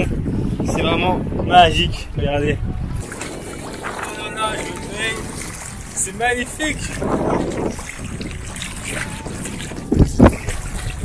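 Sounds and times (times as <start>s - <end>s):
water sloshing and splashing: 0.0s - 11.0s.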